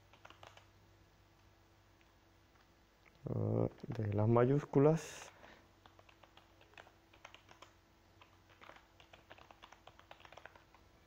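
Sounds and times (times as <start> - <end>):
computer keyboard typing: 0.0 - 0.7, 5.8 - 10.9.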